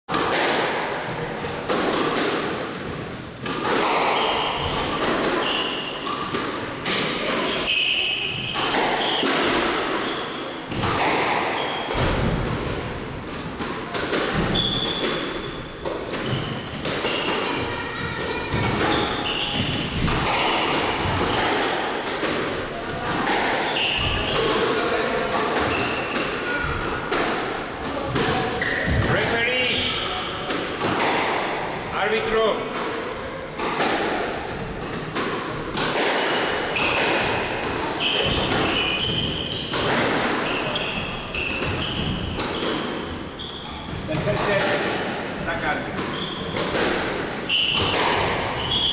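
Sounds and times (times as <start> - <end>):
squash ball hits echoing: 0.1 - 48.9
sneakers squeaking on wooden floor: 3.9 - 6.3, 7.4 - 12.1, 14.4 - 21.5, 23.6 - 24.5, 25.6 - 27.0, 28.3 - 30.5, 36.7 - 44.6, 46.0 - 46.8, 47.4 - 48.9.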